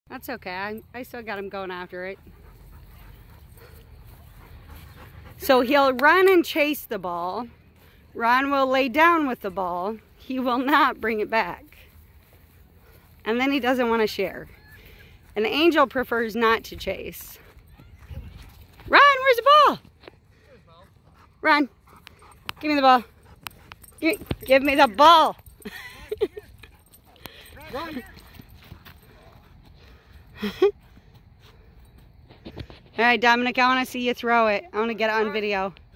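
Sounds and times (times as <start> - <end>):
dog panting: 1.4 - 8.2, 20.1 - 32.1
dog paws on dry grass: 6.9 - 33.2.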